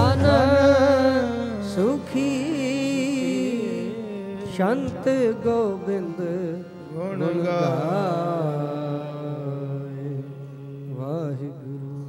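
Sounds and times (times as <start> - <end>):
man singing a hymn: 0.0 - 10.3
harmonium: 0.0 - 12.0.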